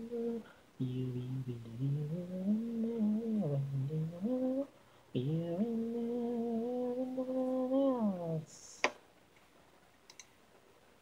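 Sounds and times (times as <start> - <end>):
person singing wordless melody: 0.0 - 9.0.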